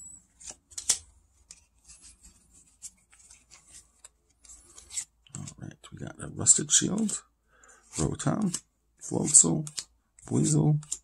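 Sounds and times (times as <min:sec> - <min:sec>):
cards rustling and clicking: 0:00.2 - 0:11.0.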